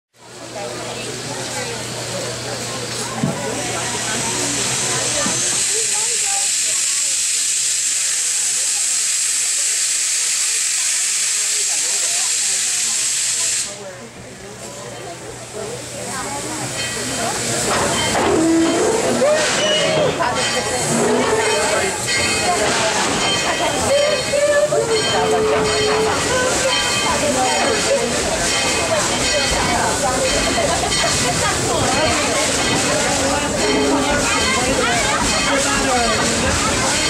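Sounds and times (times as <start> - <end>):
steam locomotive venting steam: 0.3 - 37.0.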